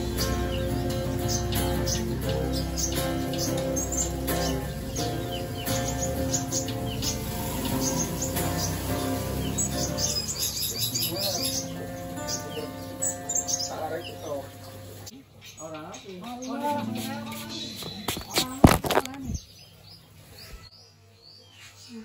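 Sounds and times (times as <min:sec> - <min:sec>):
acoustic guitar music: 0:00.0 - 0:15.2, 0:16.2 - 0:19.4
songbirds chirping: 0:00.0 - 0:22.0.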